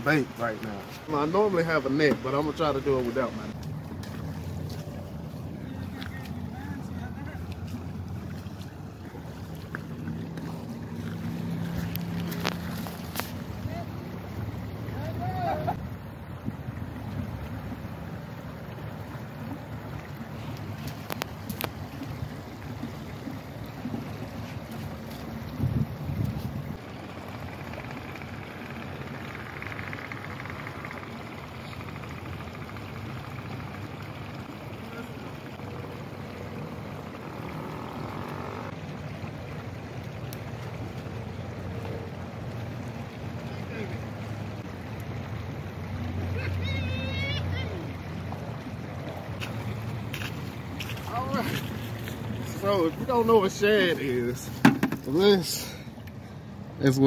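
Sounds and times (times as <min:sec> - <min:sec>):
creek water running over rocks: 0:00.0 - 0:57.0
wind noise on microphone: 0:25.5 - 0:26.8.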